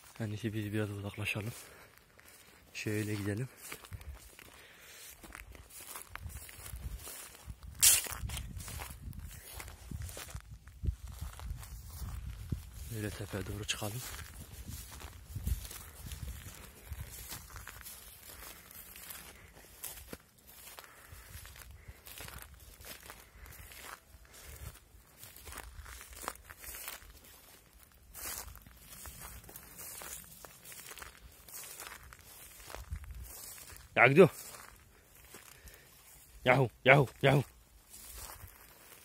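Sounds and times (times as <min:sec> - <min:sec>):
footsteps through dry grass: 0:00.0 - 0:39.0.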